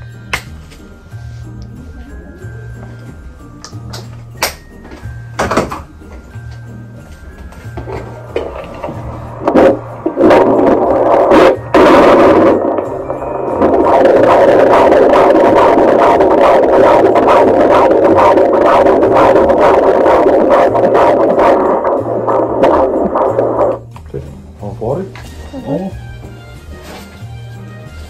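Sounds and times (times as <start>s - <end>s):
doppler probe scraping: 7.8s - 23.9s
fast whooshing heartbeat pulse: 8.4s - 23.8s.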